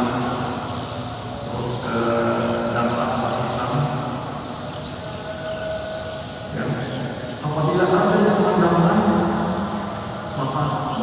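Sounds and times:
man chanting in held notes: 0:01.4 - 0:04.3, 0:06.5 - 0:11.0.

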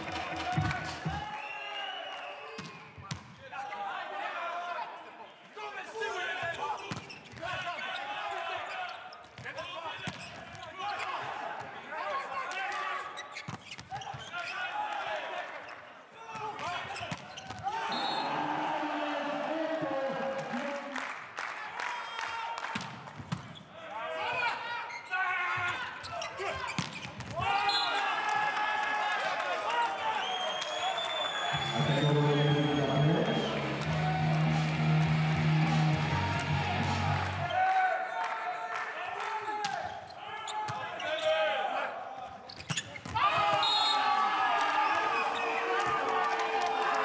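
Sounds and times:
players shouting: 0:17.6 - 0:21.0, 0:27.3 - 0:38.3, 0:43.0 - 0:47.0.

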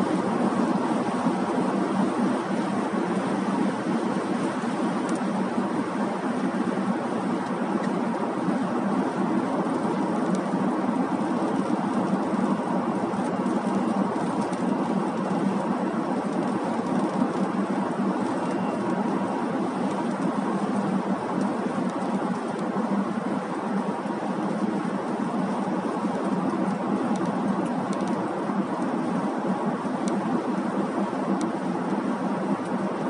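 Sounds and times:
car road and tyre noise: 0:00.0 - 0:33.0.

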